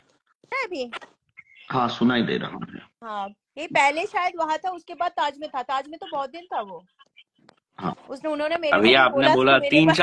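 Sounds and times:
person making wordless sounds: 0:05.8 - 0:08.4.

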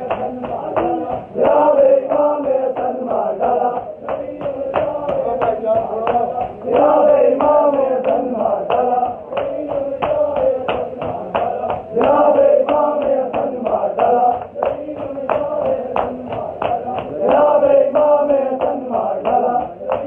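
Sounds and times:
hands slapping chests: 0:00.0 - 0:20.0
men chanting in unison: 0:00.0 - 0:20.0.

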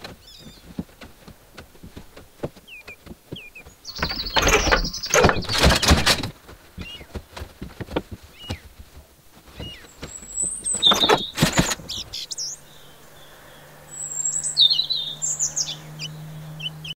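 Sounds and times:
small birds chirping: 0:00.0 - 0:17.0
steady low hum: 0:00.0 - 0:17.0.

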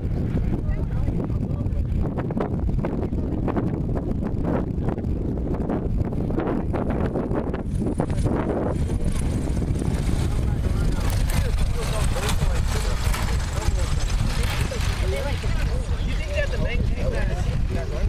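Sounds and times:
propeller airplane engine: 0:00.0 - 0:18.0
wind buffeting microphone: 0:00.0 - 0:18.0.

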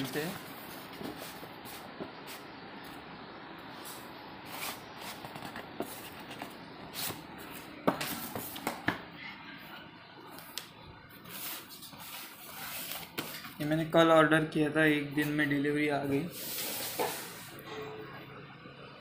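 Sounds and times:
cardboard boxes rustling and scraping: 0:04.4 - 0:08.7.

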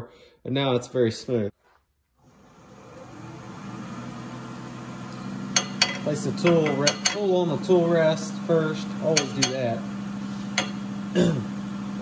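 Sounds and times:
wood lathe motor hum: 0:02.2 - 0:12.0.

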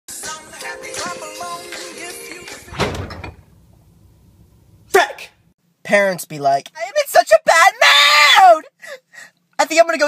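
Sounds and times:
music: 0:00.1 - 0:03.0
thump: 0:02.7 - 0:03.4.

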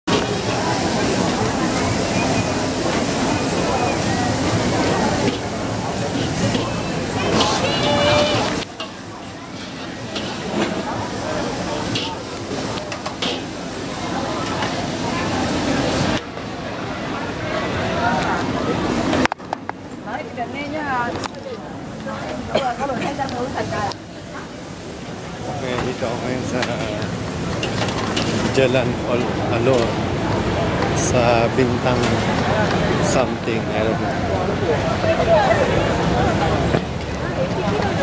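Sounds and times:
traffic noise: 0:00.0 - 0:38.0
indistinct voices: 0:00.1 - 0:19.3.

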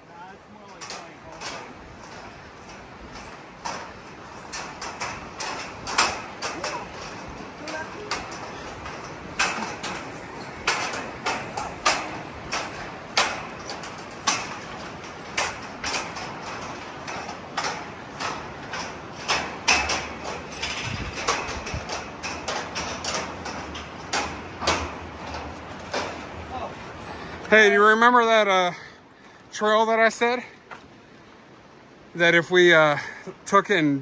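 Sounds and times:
footsteps on metal grating: 0:00.1 - 0:28.5, 0:29.1 - 0:32.0.

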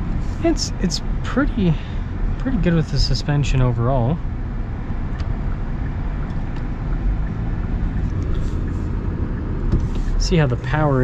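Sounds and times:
car engine rumble from cabin: 0:00.0 - 0:11.0
tyre and road noise: 0:00.0 - 0:11.0.

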